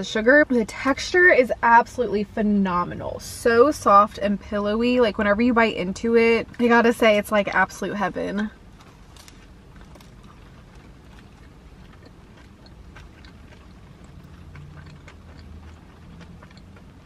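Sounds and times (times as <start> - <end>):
car interior hum: 0.0 - 17.0
soft chewing: 8.7 - 17.0.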